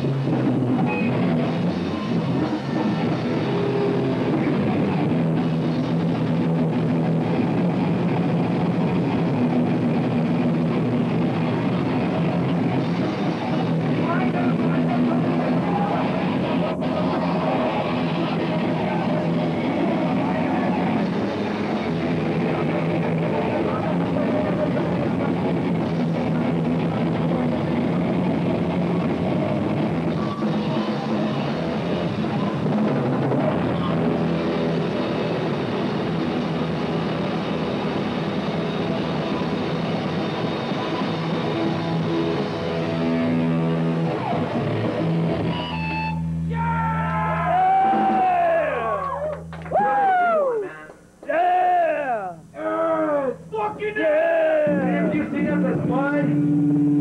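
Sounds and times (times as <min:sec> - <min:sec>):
electric guitars: 0:00.0 - 0:51.2, 0:54.6 - 0:57.0
bass guitar: 0:00.0 - 0:57.0
bending wavering guitar tones: 0:33.5 - 0:50.8, 0:54.7 - 0:57.0
pounding drum kit: 0:46.4 - 0:49.6.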